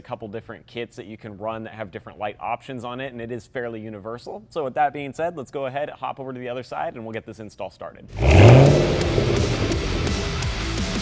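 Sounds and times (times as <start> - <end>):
heavy rock guitar music: 8.2 - 11.0.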